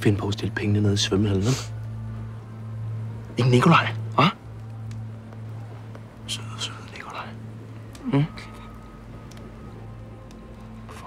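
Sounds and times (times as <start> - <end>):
steady low hum: 0.0 - 11.0
person whispering: 6.3 - 7.4.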